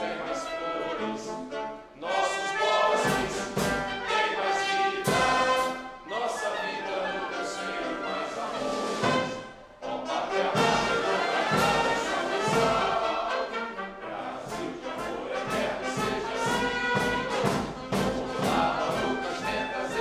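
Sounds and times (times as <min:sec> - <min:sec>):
crowd singing along: 0:00.0 - 0:20.0
orchestra with brass playing: 0:00.0 - 0:20.0.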